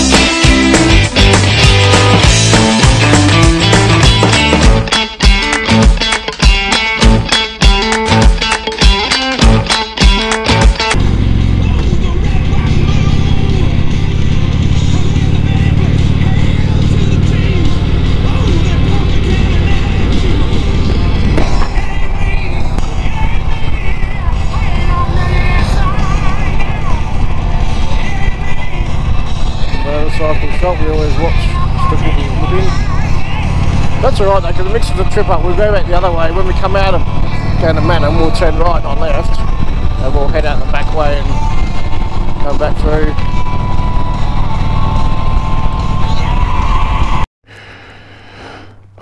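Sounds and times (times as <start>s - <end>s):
motorcycle engine running: 0.0s - 7.3s, 8.1s - 47.2s
guitar music: 0.0s - 47.2s
wind noise: 20.2s - 22.2s.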